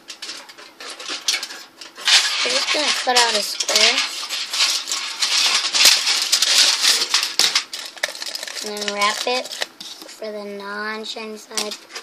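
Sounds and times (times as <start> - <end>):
aluminum foil crinkling: 0.0 - 10.2, 11.4 - 12.0.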